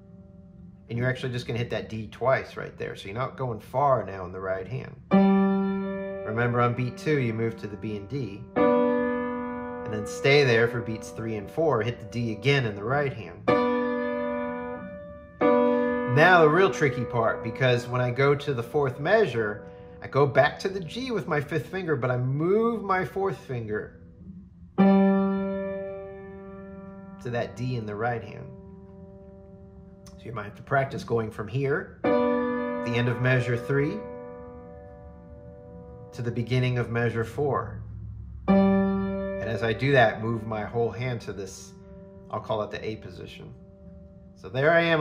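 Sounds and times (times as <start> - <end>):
piano chords: 0.0 - 45.0.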